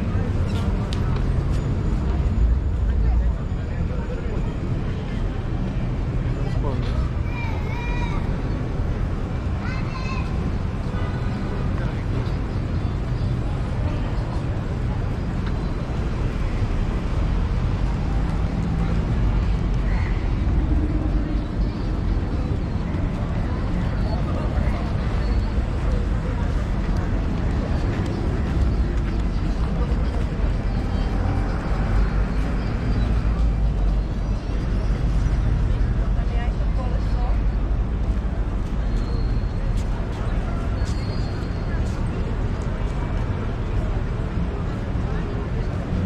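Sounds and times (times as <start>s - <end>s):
passers-by talking: 0.0s - 46.0s.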